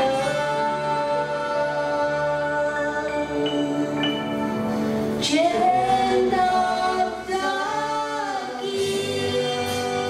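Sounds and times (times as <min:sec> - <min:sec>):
woman and man singing a hymn: 0:00.0 - 0:10.0.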